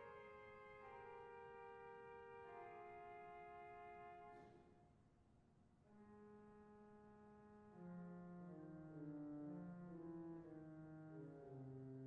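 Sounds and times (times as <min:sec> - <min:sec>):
pipe organ playing softly: 0:00.0 - 0:04.4, 0:06.1 - 0:12.0.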